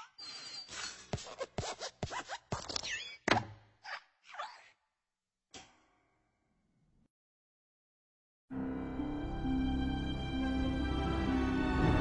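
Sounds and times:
short scratching sounds: 0.6s - 3.3s.

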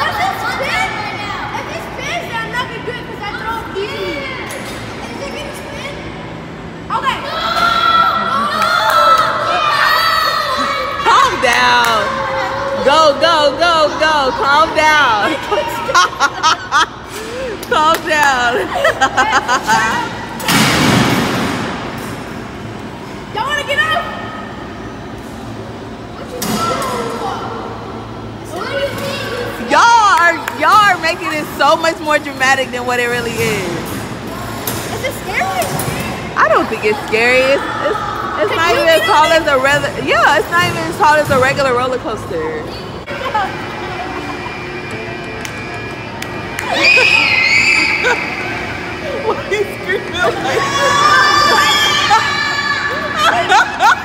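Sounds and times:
amusement ride humming: 0.0s - 54.0s
children calling out: 46.6s - 49.0s, 50.3s - 53.4s.

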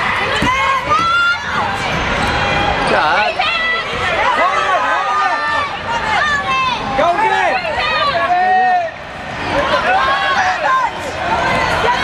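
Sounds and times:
spectators' voices: 0.0s - 12.0s.

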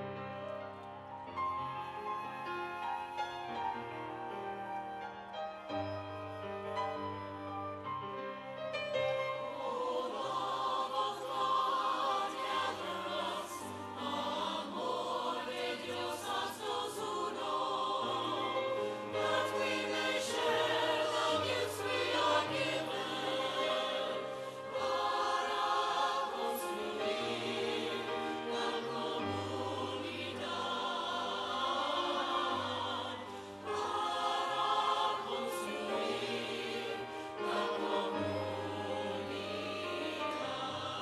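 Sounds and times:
choir singing: 1.6s - 41.0s.

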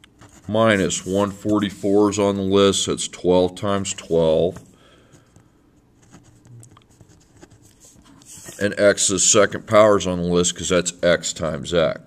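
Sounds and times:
pencil writing on paper: 6.0s - 8.6s.

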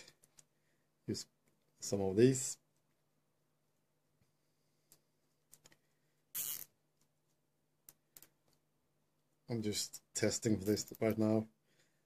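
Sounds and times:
cable tie zipping: 6.3s - 6.8s.

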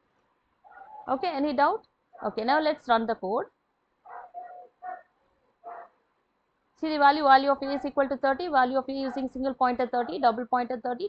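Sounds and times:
faint animal cries: 0.7s - 1.1s, 4.1s - 5.1s.

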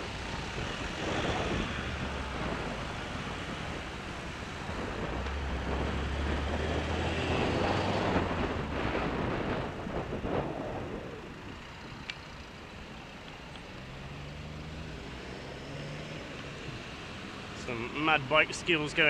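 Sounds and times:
car engine humming: 0.0s - 19.0s
wind and road noise: 0.0s - 19.0s.

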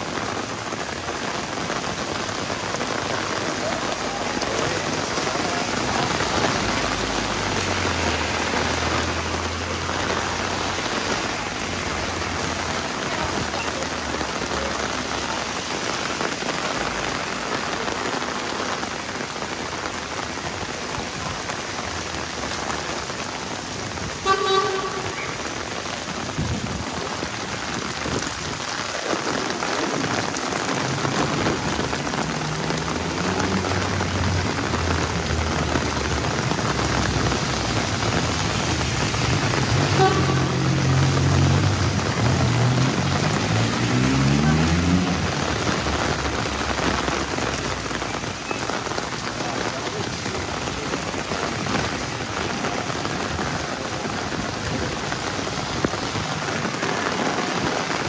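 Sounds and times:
heavy rain on pavement: 0.0s - 58.0s
passing traffic rumble: 0.0s - 58.0s
vehicle horn toot: 24.2s - 25.4s, 39.8s - 40.9s.

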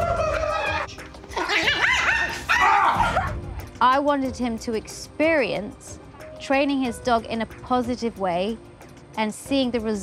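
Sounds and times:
background music: 0.0s - 10.0s
small dog yapping: 1.6s - 3.3s.

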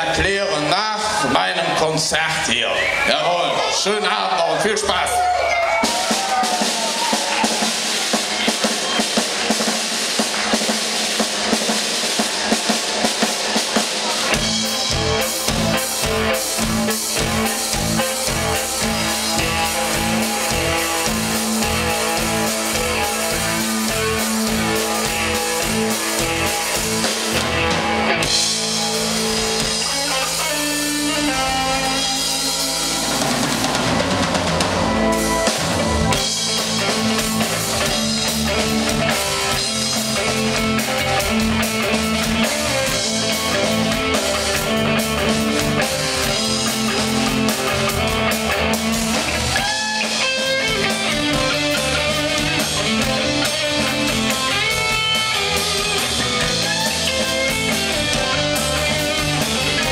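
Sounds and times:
live rock band: 0.0s - 59.9s
drum kit driving pattern: 2.0s - 59.9s.

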